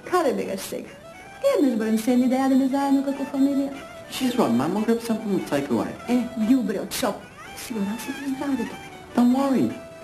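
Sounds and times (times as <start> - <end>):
person speaking: 0.1 - 10.0.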